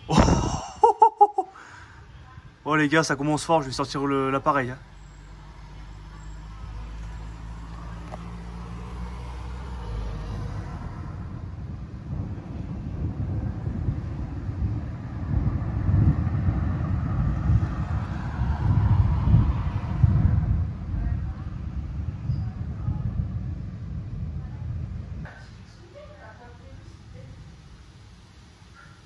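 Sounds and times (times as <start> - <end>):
low thunder rumble: 8.8 - 25.3.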